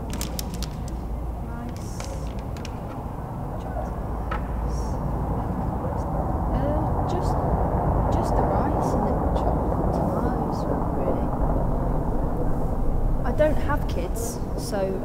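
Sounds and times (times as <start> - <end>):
person speaking clearly: 0.0 - 3.0
murmur of indistinct voices: 0.0 - 15.0
room noise: 0.0 - 15.0.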